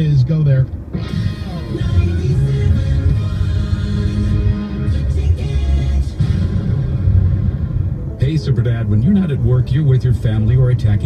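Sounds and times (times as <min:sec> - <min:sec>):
music with heavy bass line: 0:00.8 - 0:11.0.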